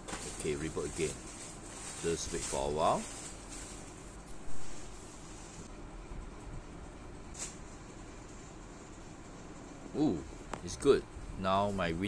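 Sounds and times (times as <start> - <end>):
computer fans humming: 0.0 - 12.0.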